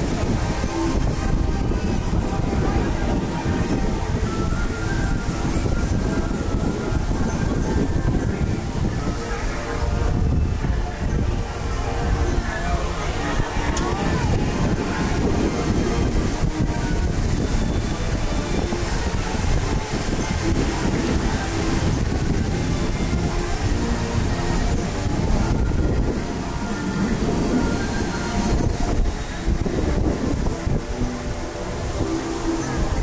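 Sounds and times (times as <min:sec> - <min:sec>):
faint ride music: 0:00.0 - 0:33.0
rumbling wind noise on microphone: 0:00.0 - 0:33.0.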